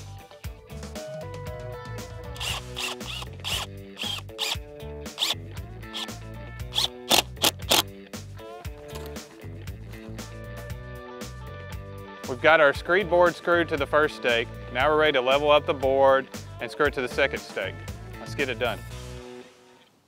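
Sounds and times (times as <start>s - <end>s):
background music: 0.0s - 20.0s
cordless drill driving a screw: 2.4s - 4.6s, 5.2s - 7.9s.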